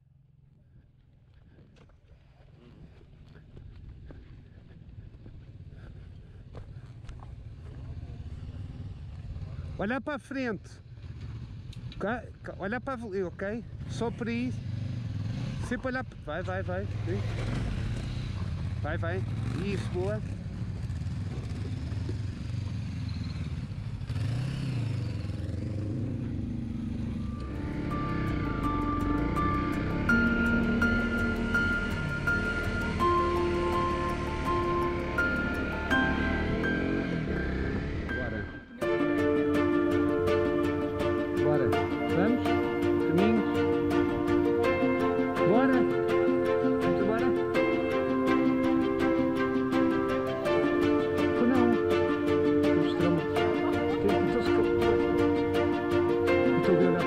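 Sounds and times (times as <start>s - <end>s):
motorcycle engine rumbling: 0.0s - 9.9s, 10.7s - 57.0s
music with ticking beat: 27.3s - 37.6s, 38.8s - 57.0s.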